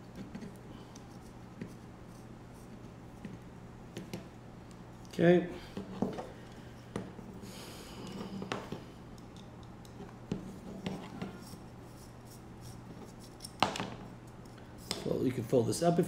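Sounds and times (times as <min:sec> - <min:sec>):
low steady hum: 0:00.0 - 0:16.0.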